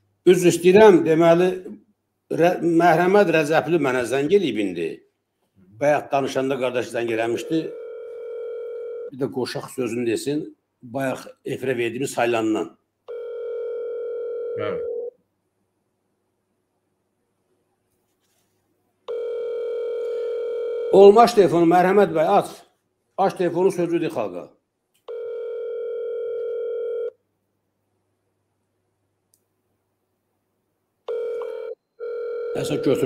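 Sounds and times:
phone ringback tone: 7.3s - 9.1s, 13.1s - 15.1s, 19.1s - 21.0s, 25.1s - 27.2s, 31.1s - 33.0s.

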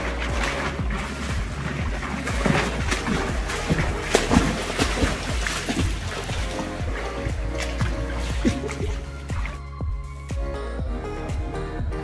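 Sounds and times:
water splashing from swimming: 0.0s - 10.1s
background music: 0.0s - 12.0s.

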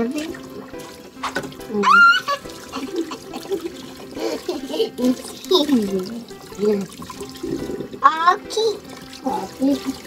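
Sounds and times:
tap running into sink: 0.0s - 10.0s.

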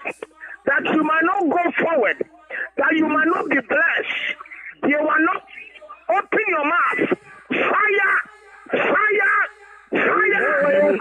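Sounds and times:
person praying loudly over telephone: 0.0s - 11.0s.

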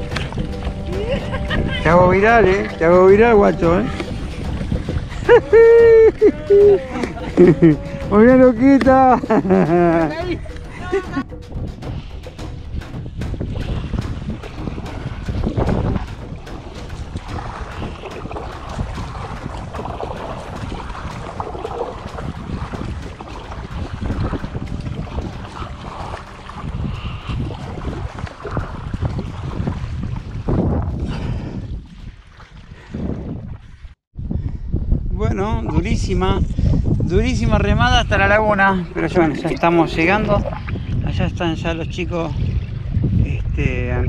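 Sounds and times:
water around hull: 0.0s - 44.0s
wind buffeting microphone: 0.0s - 44.0s.

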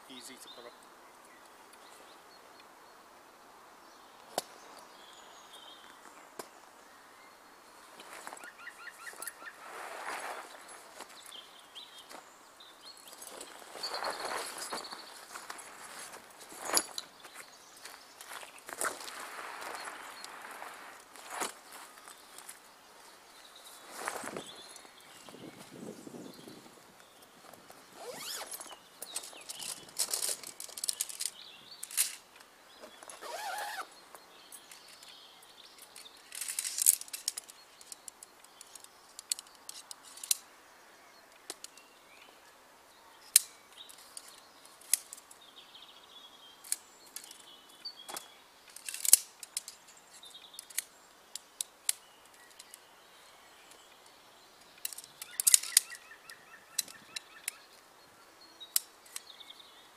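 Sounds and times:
canvas rustling: 7.8s - 11.4s, 13.1s - 22.6s, 23.7s - 25.9s, 27.6s - 31.3s, 32.8s - 33.9s
metal poles clicking together: 35.9s - 40.4s, 48.7s - 49.8s, 54.7s - 56.0s.

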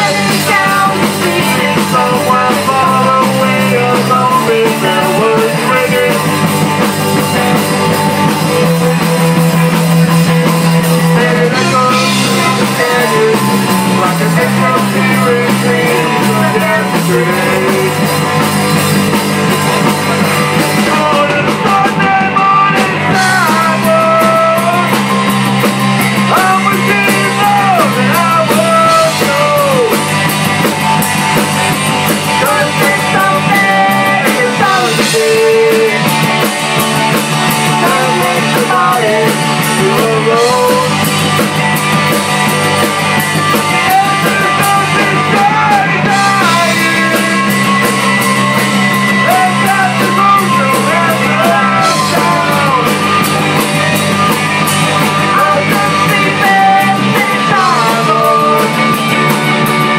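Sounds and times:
live country band playing: 0.0s - 59.9s.

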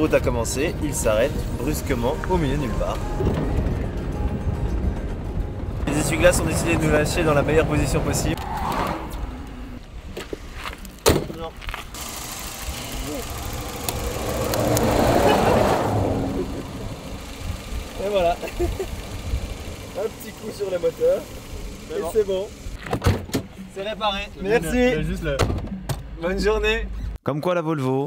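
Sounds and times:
vehicle passing on road: 0.6s - 10.8s, 11.6s - 22.8s.

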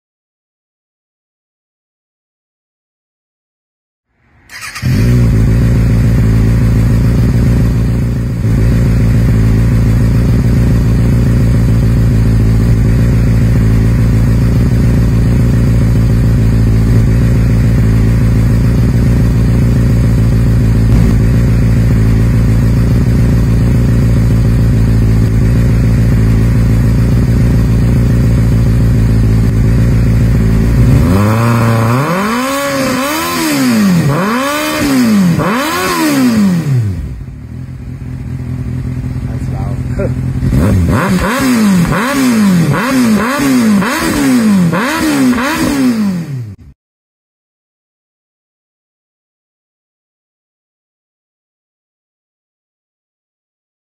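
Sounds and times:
motorcycle engine idling: 4.5s - 45.7s
motorcycle engine revving: 4.5s - 46.8s.

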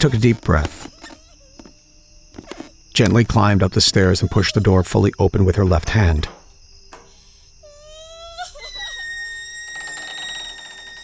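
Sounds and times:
door creaking on hinges: 5.9s - 7.3s, 8.2s - 11.0s.

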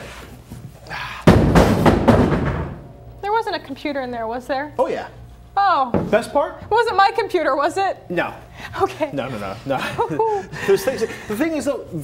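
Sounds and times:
plastic case crashing down: 1.3s - 2.9s.

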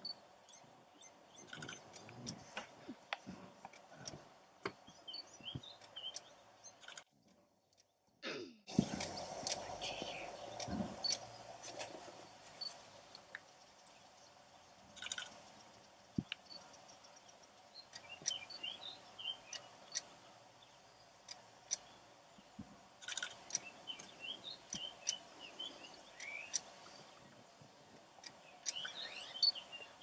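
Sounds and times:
small birds chirping: 0.0s - 8.1s, 8.7s - 30.0s
sharp clicks: 1.4s - 4.8s, 5.5s - 8.0s, 15.0s - 15.6s, 23.0s - 25.3s.

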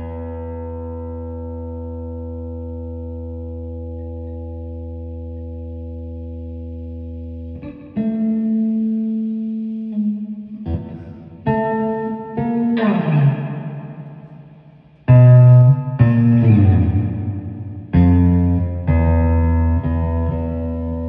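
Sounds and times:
electric guitar chords: 0.0s - 21.0s.

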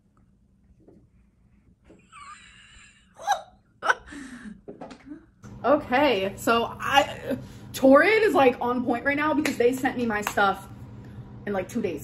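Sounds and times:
woman laughing in gasps: 2.2s - 4.7s.

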